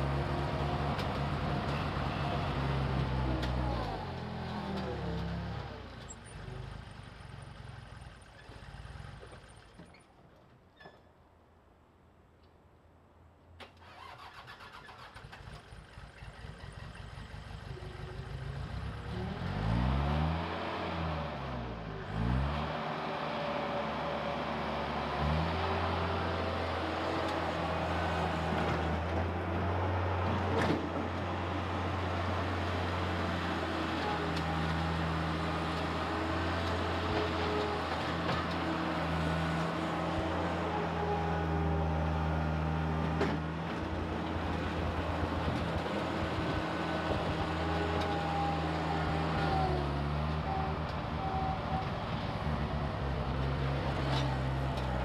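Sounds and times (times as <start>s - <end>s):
loader engine running: 0.0s - 9.7s, 15.8s - 55.0s.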